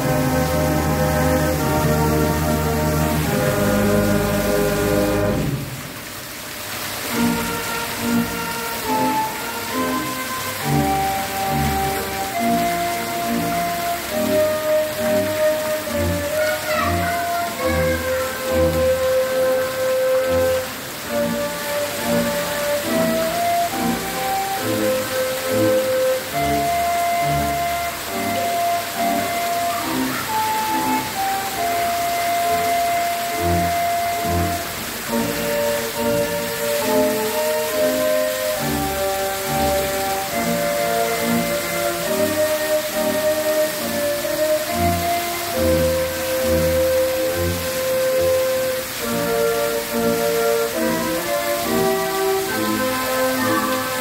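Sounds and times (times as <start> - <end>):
fountain jets splashing: 0.0 - 54.0.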